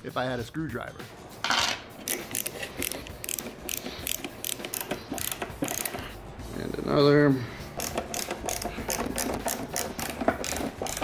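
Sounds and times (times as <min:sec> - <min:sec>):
screwdriver ratchet clicking: 0:02.0 - 0:06.1, 0:07.7 - 0:11.0.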